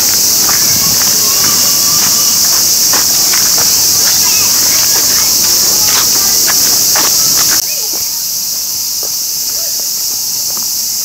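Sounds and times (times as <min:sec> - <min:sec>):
cicadas chorus: 0:00.0 - 0:11.0.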